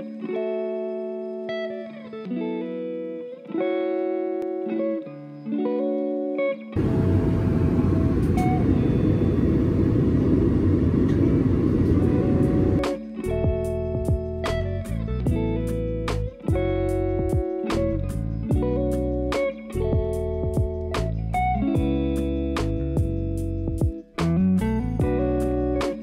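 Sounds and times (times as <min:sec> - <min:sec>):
guitar-led background music: 0:00.0 - 0:26.0
airliner cabin rush in flight: 0:06.8 - 0:12.8.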